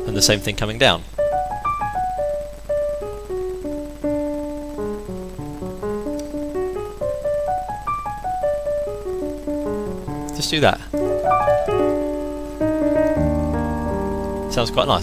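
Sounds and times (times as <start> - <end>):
digital piano descending runs: 10.9 - 15.0.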